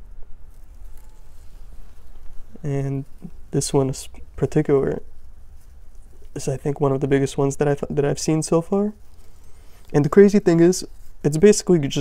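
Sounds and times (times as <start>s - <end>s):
rustling of leafy plants: 0.4s - 12.0s.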